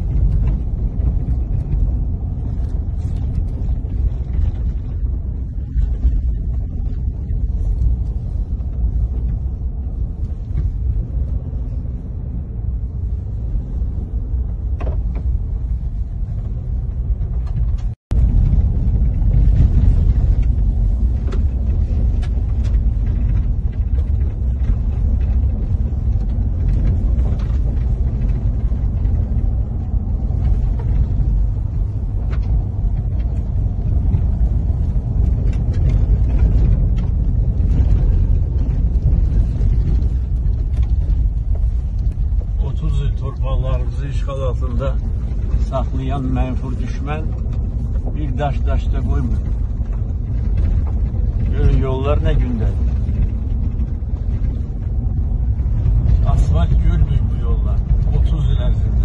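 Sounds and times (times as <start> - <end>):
car cabin road rumble: 0.0 - 59.0.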